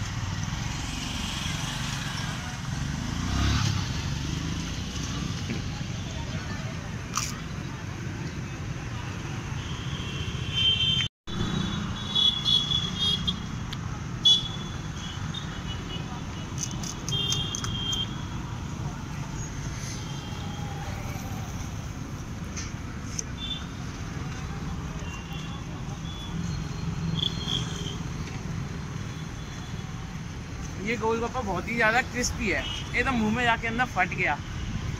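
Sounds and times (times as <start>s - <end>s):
road traffic rumble: 0.0s - 34.9s.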